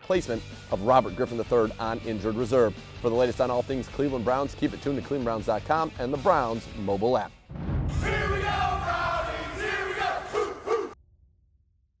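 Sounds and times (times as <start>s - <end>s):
short dog barks: 10.3s - 11.0s.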